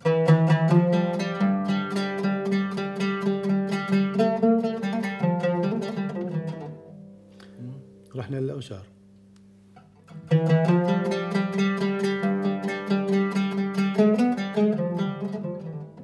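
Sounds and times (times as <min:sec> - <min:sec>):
oud plucked notes: 0:00.0 - 0:16.0.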